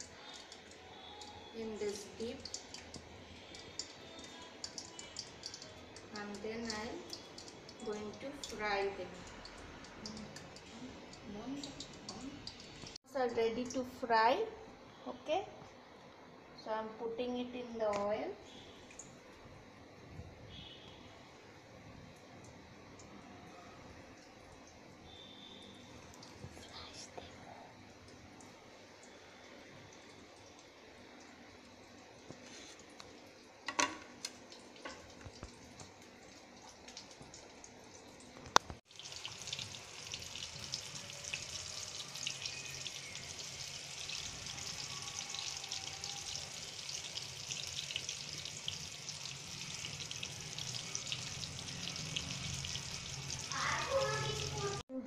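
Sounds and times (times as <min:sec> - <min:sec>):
chicken deep-frying in oil: 0:00.0 - 0:14.6, 0:20.5 - 0:26.6, 0:27.9 - 0:54.8.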